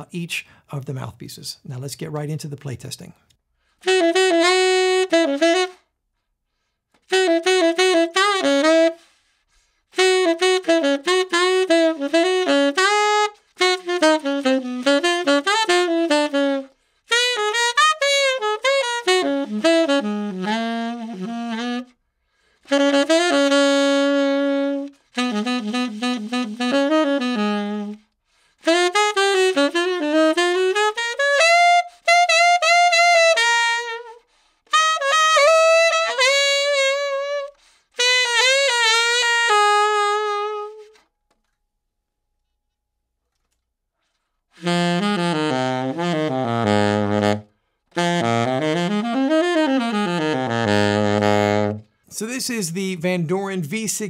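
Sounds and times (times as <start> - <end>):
tenor saxophone playing jazz: 3.6 - 6.0, 6.6 - 41.1, 44.4 - 54.0.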